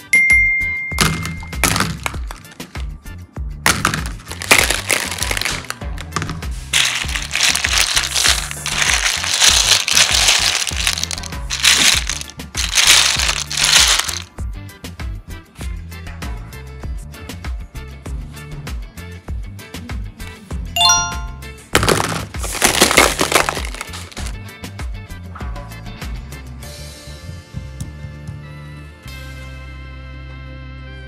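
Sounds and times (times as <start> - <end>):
background music: 0.0 - 31.0
plastic building blocks clattering: 1.0 - 2.9, 3.7 - 14.3, 21.8 - 24.4.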